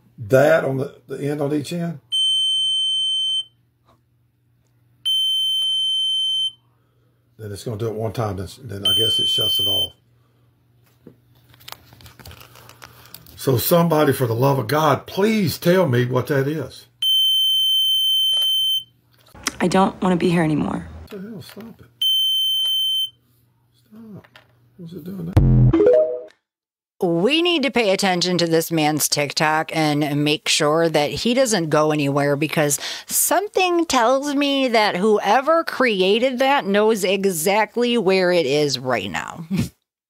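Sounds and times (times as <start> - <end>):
high-pitched electronic tone: 25.4 - 26.3.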